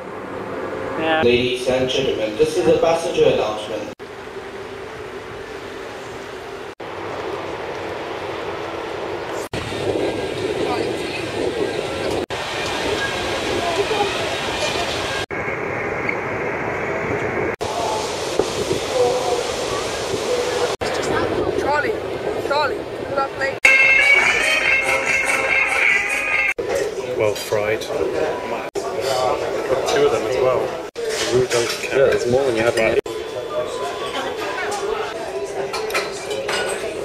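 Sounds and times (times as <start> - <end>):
steady rumbling hiss: 0.0 - 23.6.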